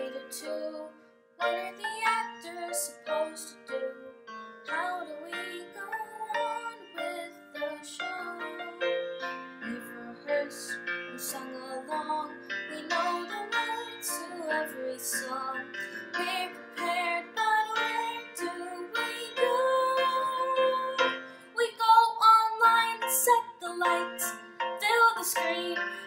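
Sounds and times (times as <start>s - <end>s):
girl singing: 0.0s - 9.0s, 9.6s - 26.0s
piano chords: 0.0s - 26.0s.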